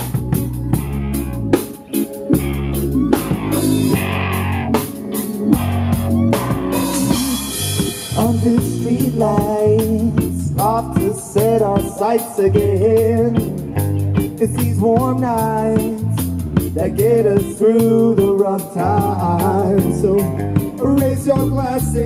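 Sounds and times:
drum hits: 0.0s - 11.9s
electric guitars: 0.0s - 22.0s
held bass notes: 0.0s - 22.0s
live band playing instrumental: 0.0s - 22.0s.

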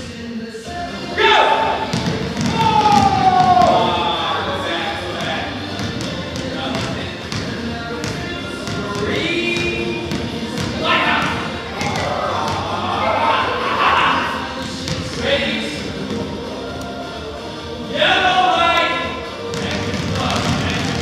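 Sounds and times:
basketballs bouncing on hardwood floor: 1.8s - 4.0s, 5.2s - 12.8s, 14.6s - 15.3s, 19.4s - 21.0s
children shouting and squealing: 2.5s - 4.6s.

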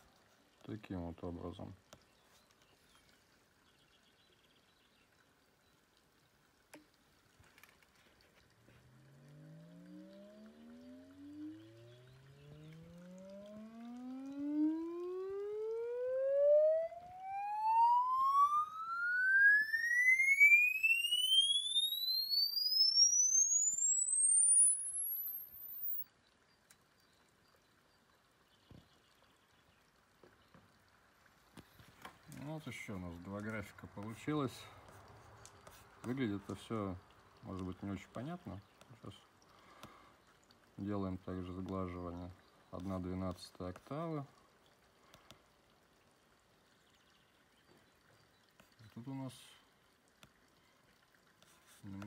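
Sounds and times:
rising sine sweep tone: 9.0s - 26.0s.

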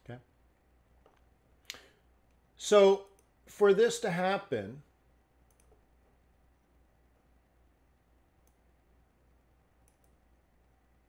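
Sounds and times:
faint computer mouse clicks: 5.4s - 5.8s, 9.8s - 10.2s.

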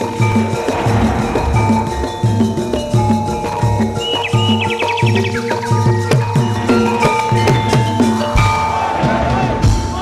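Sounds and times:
struck bronze metallophones: 0.0s - 9.3s.

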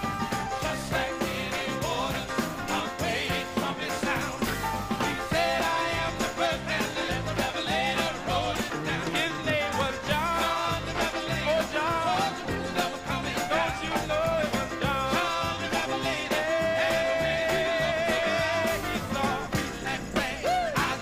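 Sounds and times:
live band playing: 0.0s - 21.0s
steady drum beat: 0.0s - 21.0s
person singing: 5.0s - 21.0s.

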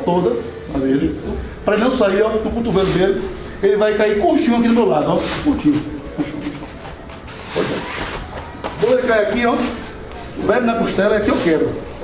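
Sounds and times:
uniforms scuffling: 4.9s - 11.7s.

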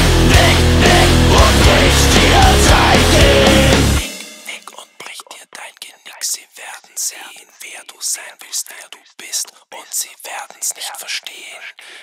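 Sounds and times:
heavy metal band: 0.0s - 4.5s
man whispering vocals: 4.5s - 12.0s.

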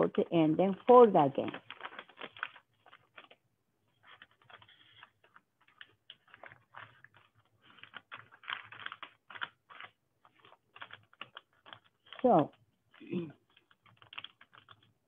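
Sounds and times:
paper rustling and crinkling: 0.9s - 15.0s.

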